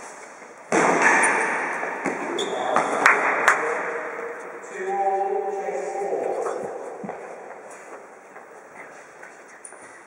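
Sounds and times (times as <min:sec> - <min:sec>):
echoing indoor court noise: 0:00.0 - 0:10.0.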